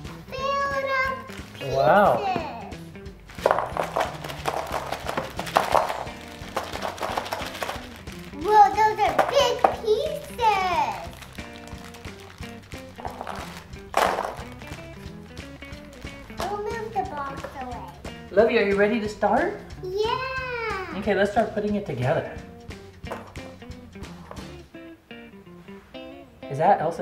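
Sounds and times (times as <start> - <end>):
background music: 0.0 - 27.0
plastic bag crinkling: 1.2 - 1.7, 3.3 - 17.8
puzzle pieces clattering on table: 3.3 - 10.3, 10.9 - 14.8
puzzle pieces being shuffled: 3.3 - 18.0.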